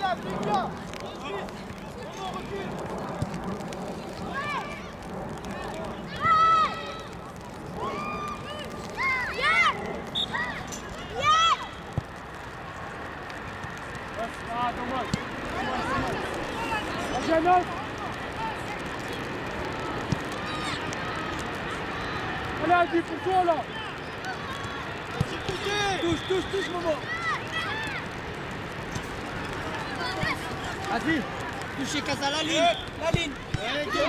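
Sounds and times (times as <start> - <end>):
children shouting: 4.3 - 7.2, 7.8 - 11.8, 20.2 - 22.6, 26.5 - 28.2, 33.5 - 34.0.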